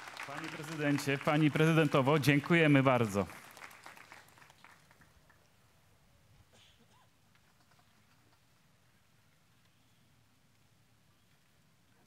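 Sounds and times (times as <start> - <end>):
faint scattered claps: 0.0 - 5.6.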